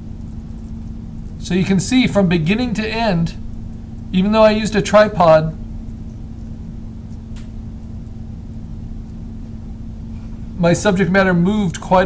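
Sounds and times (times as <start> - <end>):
low rumble: 0.0 - 11.8
electrical hum: 0.0 - 12.0.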